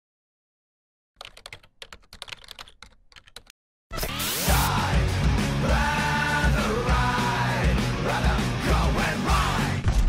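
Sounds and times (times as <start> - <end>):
loud music: 4.0 - 9.9.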